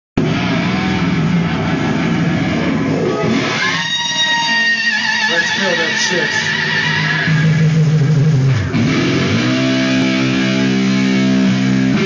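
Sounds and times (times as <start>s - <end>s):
amplified electric guitar: 0.2s - 12.0s.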